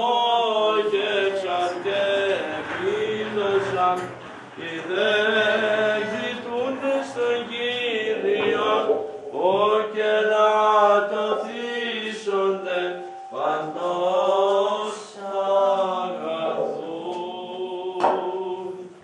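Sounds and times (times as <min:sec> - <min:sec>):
man chanting: 0:00.0 - 0:18.9.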